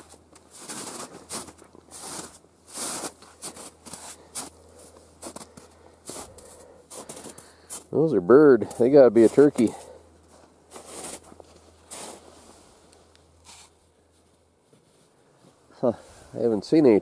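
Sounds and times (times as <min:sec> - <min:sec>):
boots crunching through snow: 0:00.0 - 0:08.0, 0:09.2 - 0:12.7.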